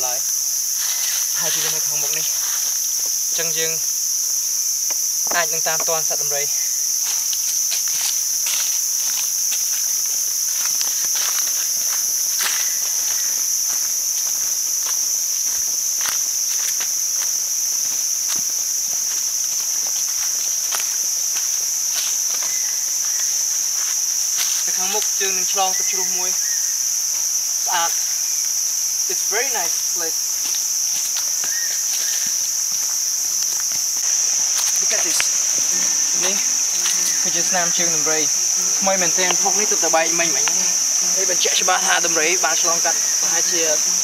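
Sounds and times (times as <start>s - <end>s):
forest insects droning: 0.0s - 44.0s
footsteps on dry leaves: 0.4s - 4.5s, 5.5s - 44.0s.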